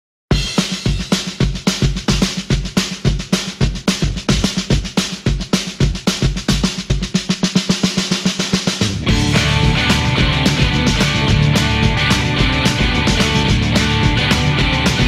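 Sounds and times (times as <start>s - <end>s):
bass drum and snare beat: 0.3s - 15.0s
rock band with electric guitars: 8.7s - 15.0s.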